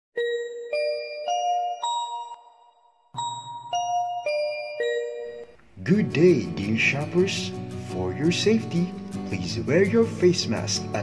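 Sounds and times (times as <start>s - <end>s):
person speaking: 5.7s - 11.0s.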